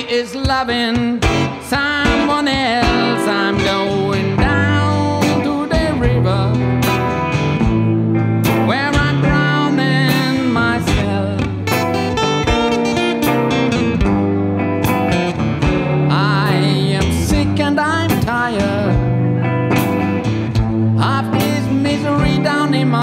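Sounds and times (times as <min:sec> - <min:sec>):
blues guitars: 0:00.0 - 0:23.0.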